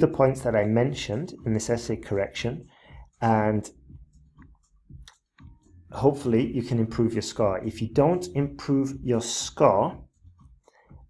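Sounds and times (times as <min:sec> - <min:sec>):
man speaking: 0:00.0 - 0:02.6, 0:03.2 - 0:03.8, 0:05.9 - 0:10.0.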